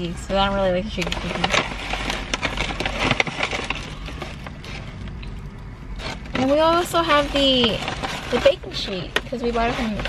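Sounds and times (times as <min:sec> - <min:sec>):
paper bag rustling and crinkling: 0:00.0 - 0:10.0.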